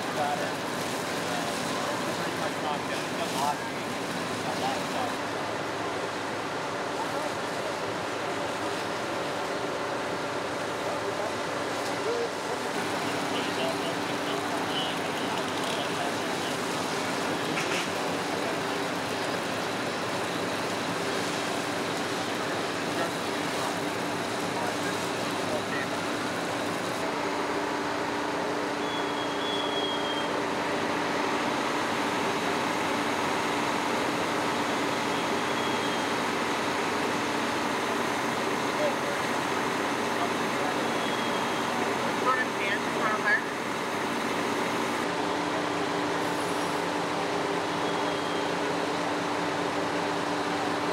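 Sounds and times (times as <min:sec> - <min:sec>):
fire truck diesel engines droning: 0:00.0 - 0:50.9.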